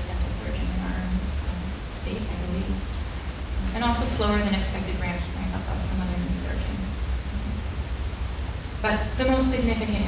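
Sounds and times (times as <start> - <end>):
woman speaking: 0.0 - 2.9, 3.6 - 7.6, 8.8 - 10.0
low hum and faint hiss: 0.0 - 10.0.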